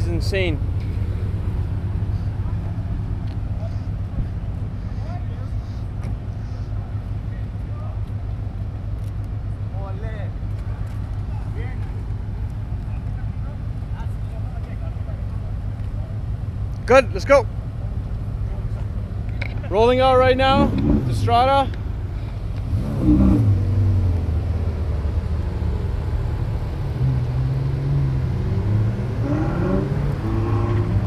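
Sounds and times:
sports cars idling: 0.0 - 29.2
faint voices: 2.0 - 8.2.

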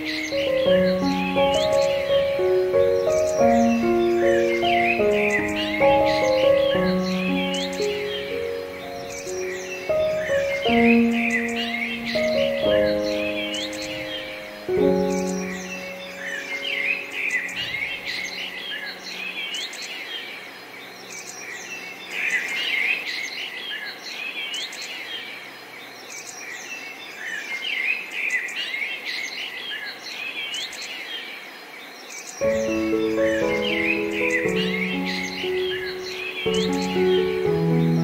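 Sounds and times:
piano music: 0.0 - 22.2, 32.4 - 38.0
birds chirping and singing: 0.0 - 38.0.

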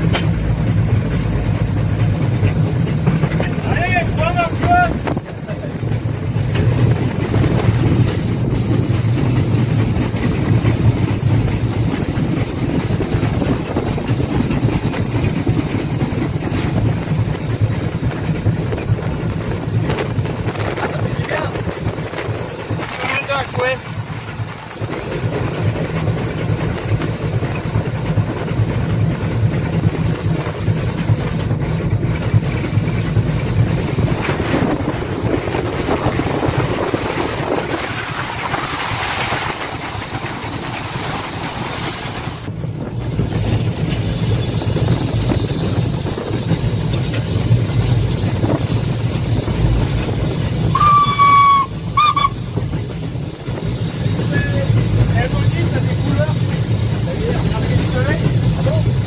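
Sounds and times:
steam hiss: 0.0 - 59.0
steam locomotive running rumble: 0.0 - 59.0
wheels on rails: 0.0 - 59.0
steam whistle blasts: 50.7 - 52.5.

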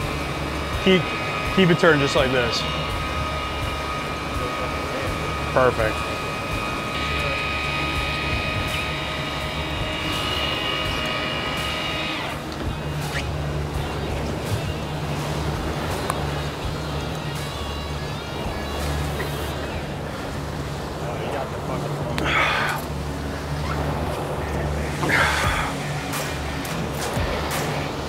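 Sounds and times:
electric fishing reel whine: 0.0 - 28.0
outboard engines droning: 0.0 - 28.0
wake water rushing: 0.0 - 28.0
wind: 0.0 - 28.0.

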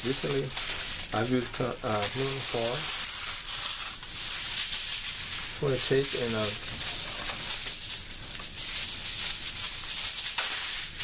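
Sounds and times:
aluminum foil crinkling: 0.0 - 11.0.

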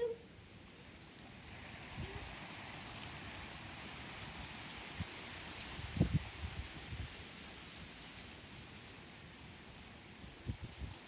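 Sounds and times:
wind in trees: 0.0 - 11.0.

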